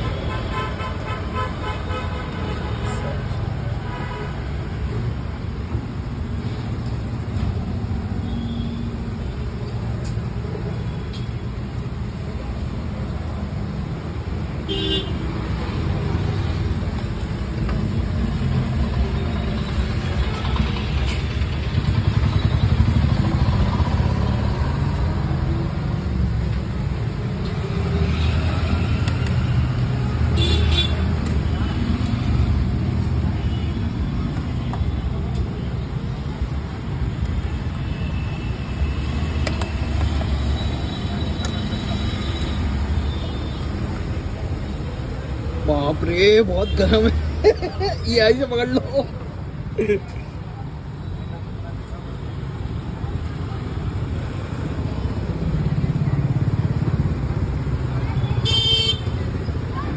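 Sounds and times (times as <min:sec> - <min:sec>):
passing motorbikes and vehicles: 0:00.0 - 0:59.9.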